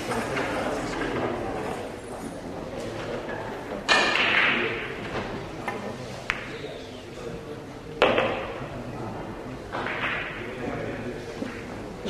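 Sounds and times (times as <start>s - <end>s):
pool ball knocking: 9.7s - 10.5s.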